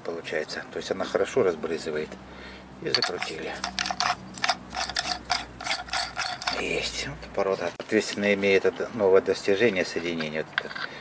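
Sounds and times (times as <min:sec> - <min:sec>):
metal threads clicking and grating: 0:02.9 - 0:06.8.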